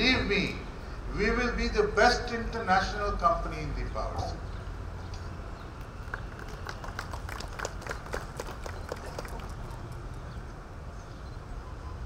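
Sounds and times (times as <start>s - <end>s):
low public address hum: 0.0s - 12.0s
audience clapping: 5.8s - 10.4s.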